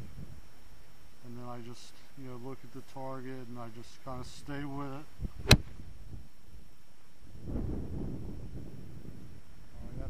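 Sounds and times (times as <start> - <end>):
wind buffeting microphone: 0.0 - 0.4, 5.2 - 6.3, 7.3 - 10.0.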